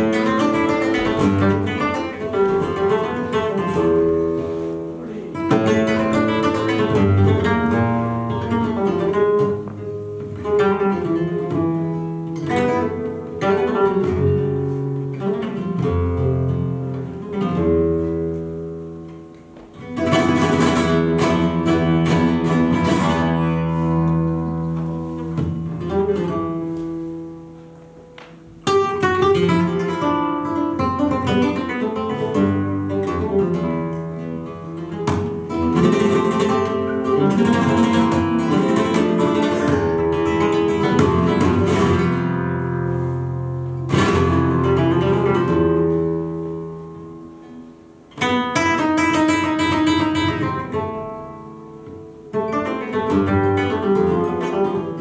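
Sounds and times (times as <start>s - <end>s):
flamenco guitar playing: 0.0s - 55.0s.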